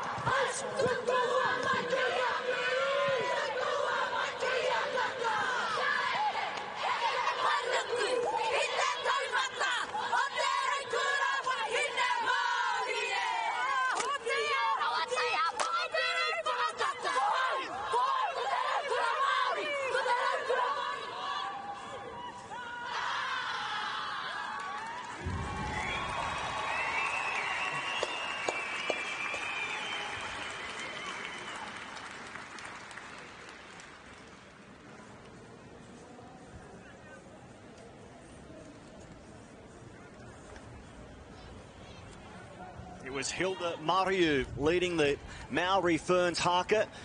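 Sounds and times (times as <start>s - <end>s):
women chanting in unison: 0.0s - 24.4s
crowd clapping and cheering: 24.4s - 35.1s.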